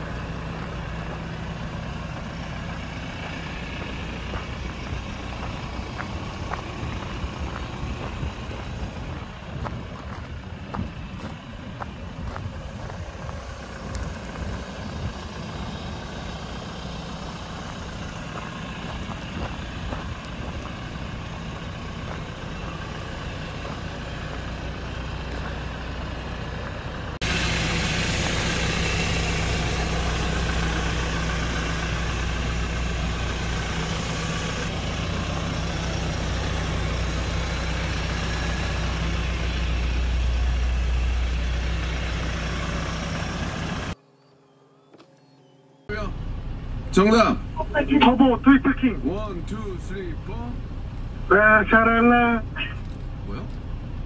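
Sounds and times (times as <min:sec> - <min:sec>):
diesel engine idling: 0:00.0 - 0:44.0, 0:45.9 - 0:54.0.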